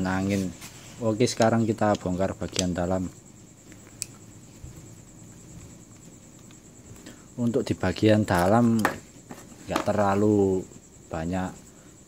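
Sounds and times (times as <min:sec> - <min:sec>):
faint handling noise: 0:00.0 - 0:07.0.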